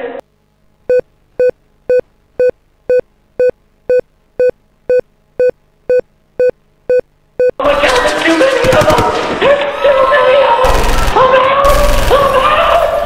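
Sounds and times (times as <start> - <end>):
short electronic beeps: 0.9 - 7.6.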